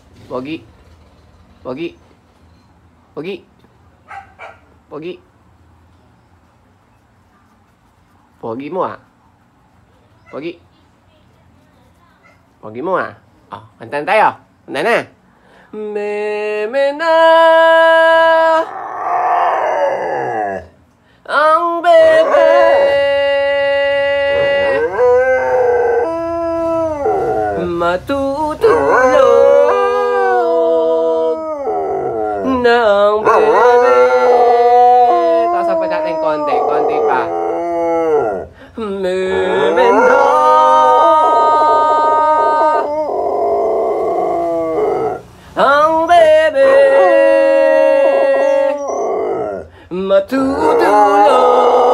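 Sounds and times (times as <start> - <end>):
dog howling: 18.2 - 20.8, 21.9 - 27.8, 28.6 - 38.5, 39.2 - 45.2, 46.5 - 49.7, 50.5 - 51.9.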